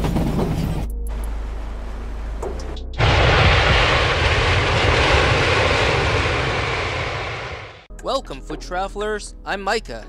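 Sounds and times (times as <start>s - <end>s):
airplane engine drone: 0.0s - 7.9s.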